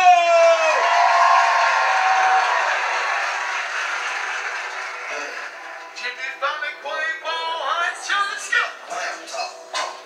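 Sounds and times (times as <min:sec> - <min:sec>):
audience applauding and cheering: 0:00.0 - 0:06.1.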